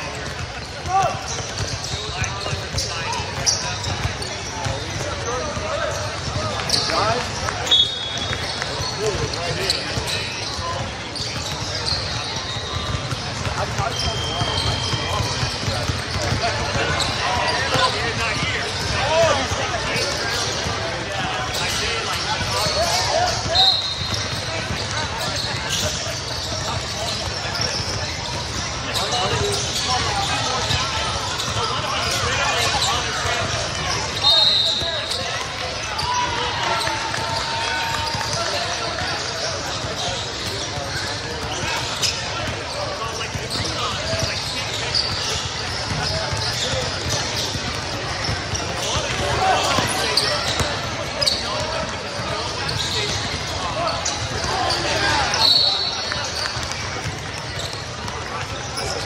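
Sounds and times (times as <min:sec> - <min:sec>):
din of many voices: 0:00.0 - 0:59.0
sneakers squeaking: 0:00.0 - 0:59.0
ball bouncing on court: 0:00.1 - 0:59.0.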